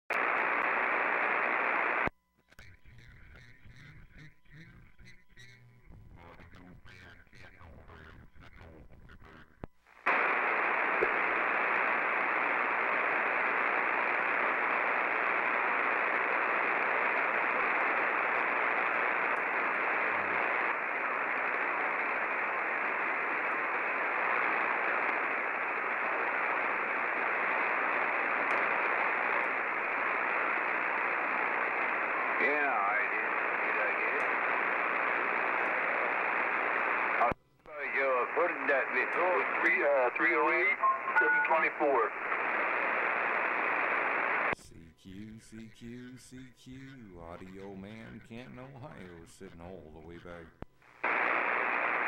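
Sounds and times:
radio static hiss: 0.1 - 52.0
faint garbled radio voice: 2.5 - 10.4, 30.9 - 42.8.

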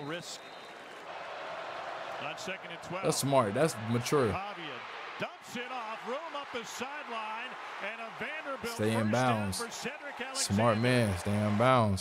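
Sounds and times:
sports announcer calling play: 2.2 - 12.0.

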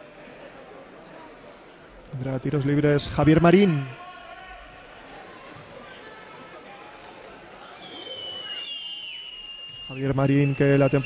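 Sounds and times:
murmur of crowd: 0.0 - 11.0
long high whistle: 7.8 - 11.0.

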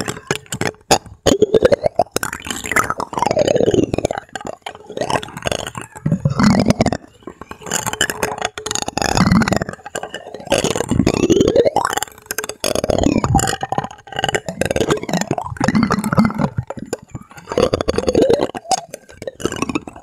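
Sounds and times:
plastic spoons scraping plastic dome: 0.0 - 20.0.

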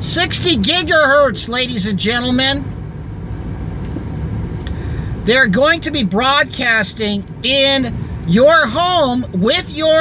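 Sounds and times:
car engine rumble: 0.0 - 10.0
road noise: 0.0 - 10.0.

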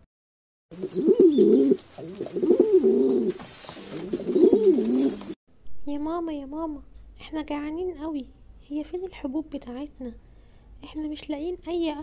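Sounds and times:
bird cooing: 0.7 - 5.4.

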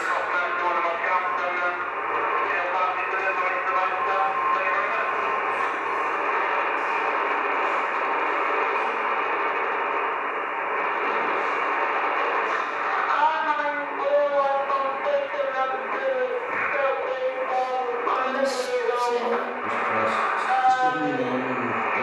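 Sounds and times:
faint speech from radio: 0.0 - 5.8, 12.5 - 22.0
radio static hiss: 0.0 - 22.0.

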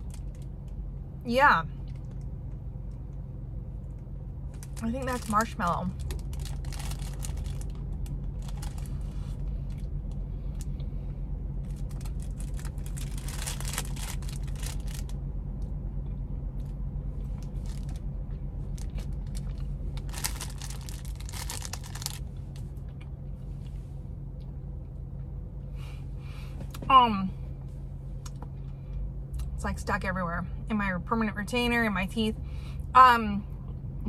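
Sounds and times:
idling car hum: 0.0 - 34.0
plastic wrapper crinkling: 4.6 - 9.9, 11.6 - 15.2, 17.4 - 18.0, 18.7 - 22.6.

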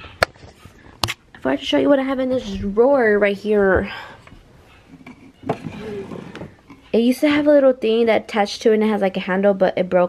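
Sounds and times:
wooden drawer sliding open: 5.4 - 6.6.

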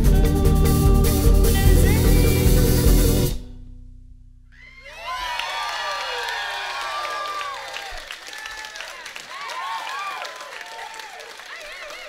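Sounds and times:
live band playing: 0.0 - 3.4
audience cheering and whooping: 4.6 - 12.0.

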